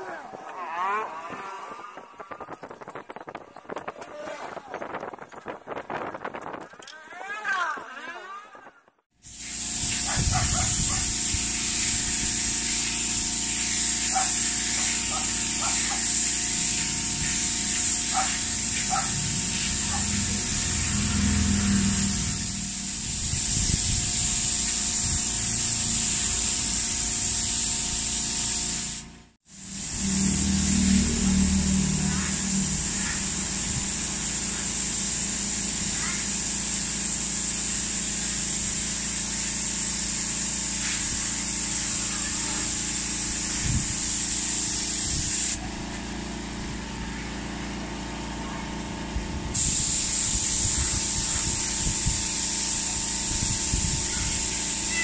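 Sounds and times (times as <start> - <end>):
spray gun hissing: 9.2 - 45.6, 49.6 - 55.0.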